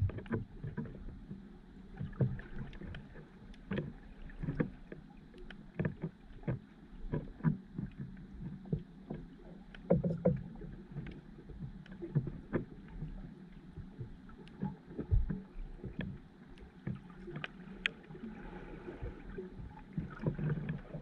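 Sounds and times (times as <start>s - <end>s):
underwater knocks and clicks: 0.0s - 21.0s
underwater rumble of moving water: 0.0s - 21.0s.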